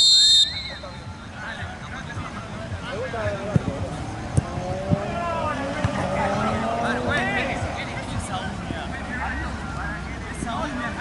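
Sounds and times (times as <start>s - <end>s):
motor vehicle passing: 3.2s - 10.3s.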